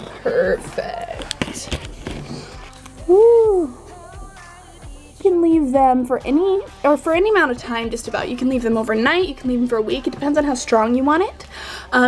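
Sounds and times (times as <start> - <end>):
woman making wordless sounds: 0.0 - 1.8, 3.0 - 3.8, 5.2 - 12.0
woman singing a rising note: 2.7 - 5.8.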